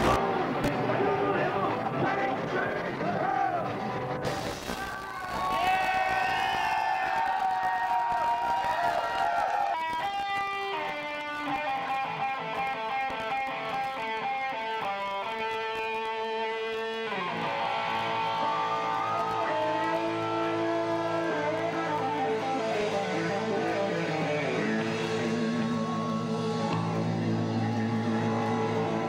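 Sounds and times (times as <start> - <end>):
electric guitar playing: 9.6 - 29.0.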